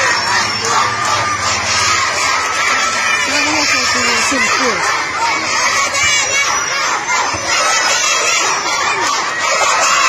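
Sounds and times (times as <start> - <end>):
crowd of children shouting: 0.0 - 10.0.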